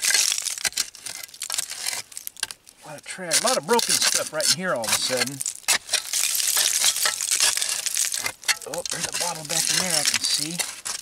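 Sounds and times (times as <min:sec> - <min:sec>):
digging tool scraping dirt and glass: 0:00.0 - 0:11.0.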